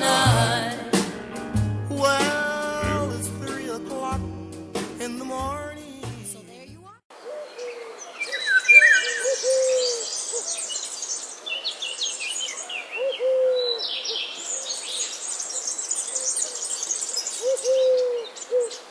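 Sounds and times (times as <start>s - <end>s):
low hooting bird calls: 7.2s - 11.0s, 12.4s - 18.9s
high bird chirps and trills: 7.3s - 18.9s.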